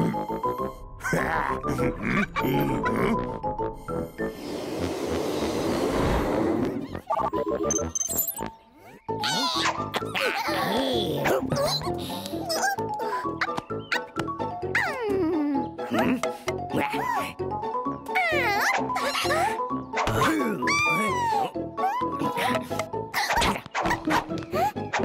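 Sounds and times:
cartoon background music: 0:00.0 - 0:25.0.

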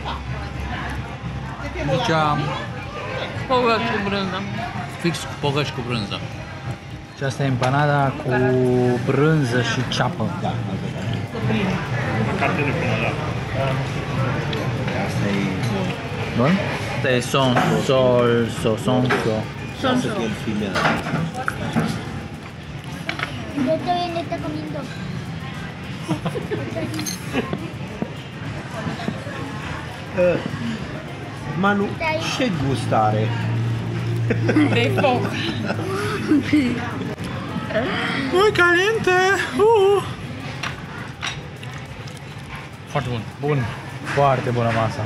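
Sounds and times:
low background hubbub: 0:00.0 - 0:45.0
people talking: 0:23.0 - 0:40.5.

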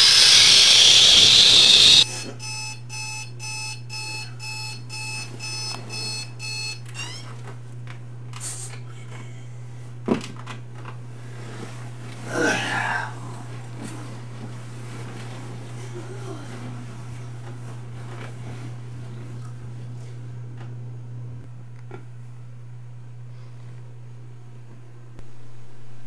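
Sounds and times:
loud rushing hiss: 0:00.0 - 0:02.0
person groaning: 0:12.3 - 0:13.2.

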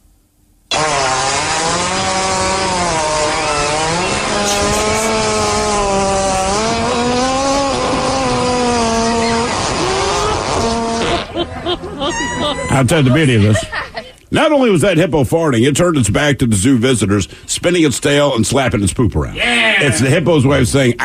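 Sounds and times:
hippopotamus farting: 0:00.7 - 0:11.4.

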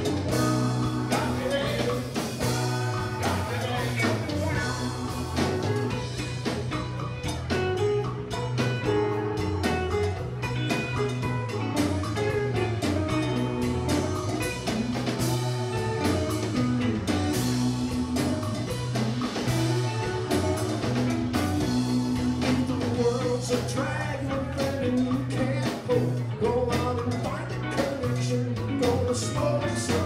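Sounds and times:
djembe: 0:00.0 - 0:23.7
bass guitar: 0:00.0 - 0:30.0
drum kit: 0:00.0 - 0:30.0
electric guitars: 0:00.0 - 0:30.0.

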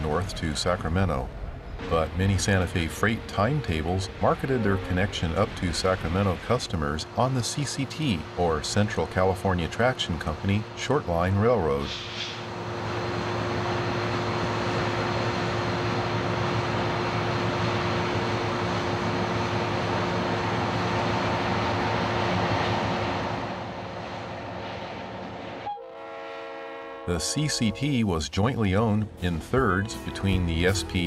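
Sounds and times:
thin steady whine: 0:00.0 - 0:22.2
locomotive engine rumble: 0:00.0 - 0:26.2, 0:26.8 - 0:31.0.

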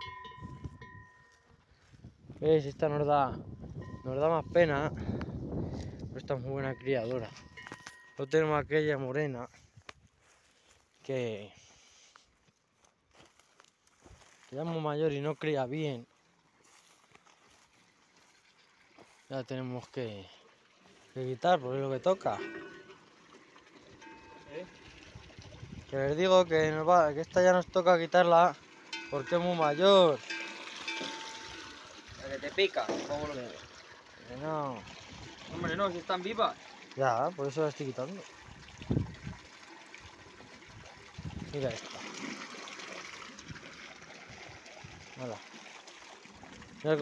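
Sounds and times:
water pouring into trough: 0:16.2 - 0:47.0.

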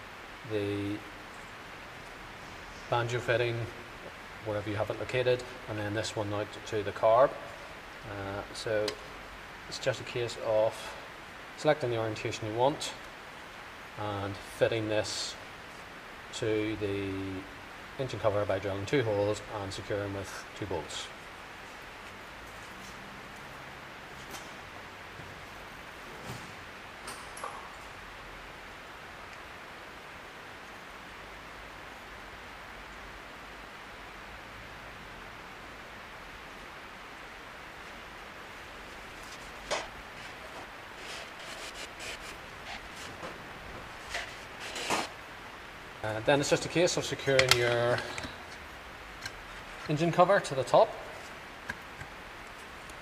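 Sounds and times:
steady hiss: 0:00.0 - 0:53.0
clicks and taps of parts handled: 0:47.4 - 0:48.6.

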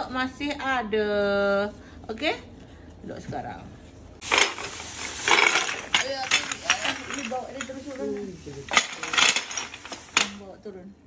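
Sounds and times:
plastic bag rustling: 0:04.2 - 0:10.4
glass bottles clinking: 0:04.2 - 0:10.5.

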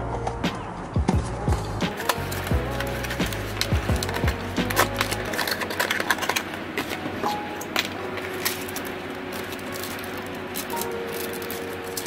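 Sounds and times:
background music with deep beat: 0:00.0 - 0:05.5.

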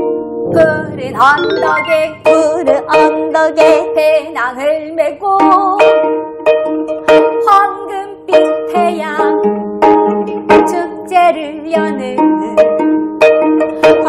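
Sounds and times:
woman singing: 0:00.5 - 0:06.0, 0:07.1 - 0:09.4, 0:10.5 - 0:12.6, 0:13.8 - 0:14.0
plucked zithers playing: 0:00.5 - 0:14.0.

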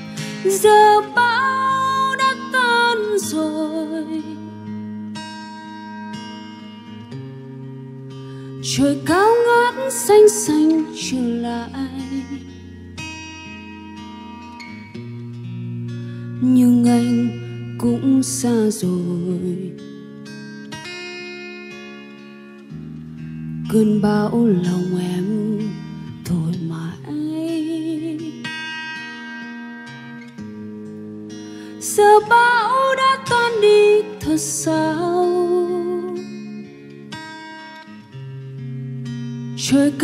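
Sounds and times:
woman singing: 0:00.0 - 0:04.8, 0:08.6 - 0:12.6, 0:16.3 - 0:20.0, 0:23.6 - 0:28.7, 0:31.6 - 0:36.7, 0:39.6 - 0:40.0
acoustic guitar: 0:00.0 - 0:40.0.

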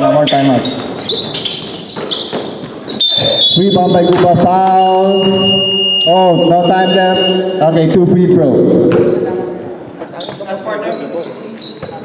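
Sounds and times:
sneakers squeaking on gym floor: 0:00.0 - 0:06.2, 0:08.9 - 0:12.0
basketball bouncing: 0:00.8 - 0:04.5.

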